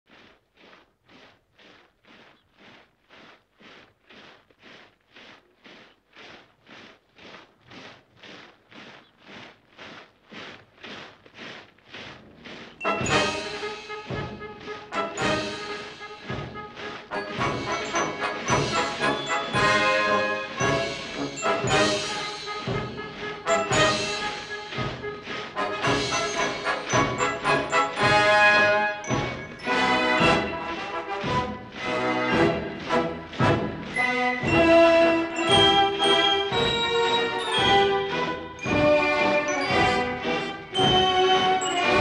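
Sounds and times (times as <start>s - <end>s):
boots marching in step: 0.1s - 42.0s
martial music with brass and drums: 12.8s - 42.0s.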